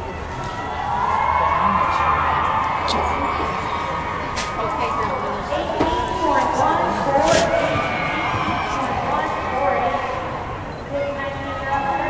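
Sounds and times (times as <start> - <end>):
people talking: 1.0 - 12.0.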